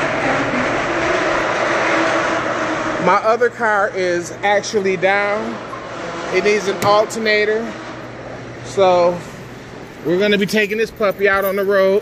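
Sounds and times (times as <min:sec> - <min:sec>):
steady machine noise: 0:00.0 - 0:12.0.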